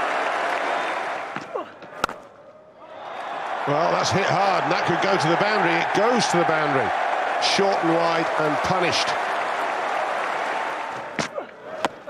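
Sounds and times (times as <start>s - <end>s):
stadium crowd applauding and cheering: 0.0s - 1.4s, 2.8s - 11.2s
cricket bat striking ball: 1.3s - 2.2s.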